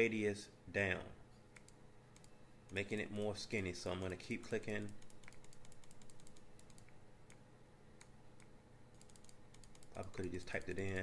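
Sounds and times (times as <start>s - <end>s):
computer mouse clicks: 1.5s - 2.8s, 4.8s - 7.4s, 8.0s - 11.0s.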